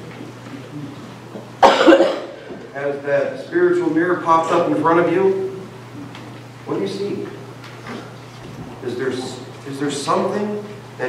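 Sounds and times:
man coughing: 0:01.6 - 0:02.6, 0:04.3 - 0:04.8.

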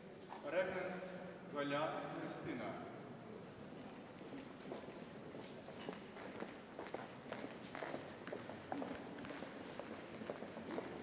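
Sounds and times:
people walking footsteps: 0:03.8 - 0:11.0.

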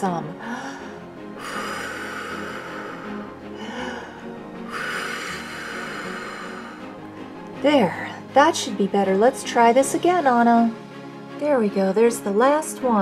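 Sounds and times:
quiet background music: 0:00.0 - 0:13.0
person blowing long breaths: 0:00.4 - 0:07.4.

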